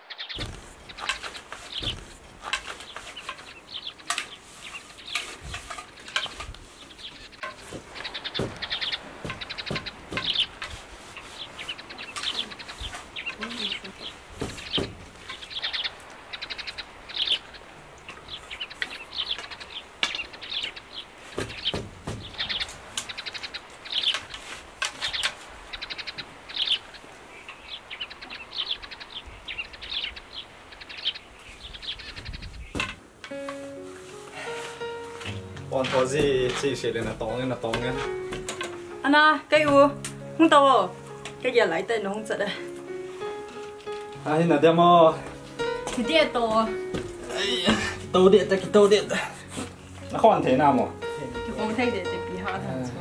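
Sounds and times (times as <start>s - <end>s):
small birds chirping: 0.0s - 53.0s
wooden knocks of loom: 0.4s - 15.6s, 18.0s - 26.4s, 32.2s - 33.6s, 35.2s - 40.2s.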